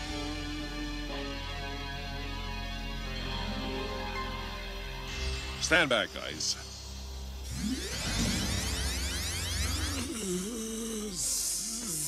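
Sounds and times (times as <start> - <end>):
music melody: 1.6 - 6.6.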